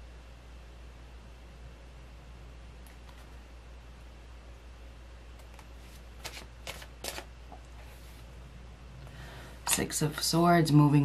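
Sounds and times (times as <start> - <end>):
cards being shuffled: 2.9 - 3.4, 5.4 - 8.2.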